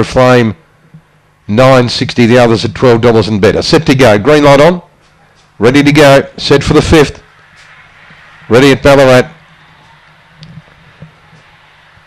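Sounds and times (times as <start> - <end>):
low hum: 6.3 - 12.0.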